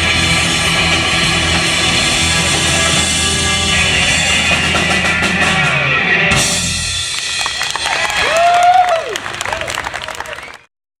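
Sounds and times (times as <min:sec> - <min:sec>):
audience clapping: 0:07.0 - 0:10.7
audience cheering: 0:07.1 - 0:10.7.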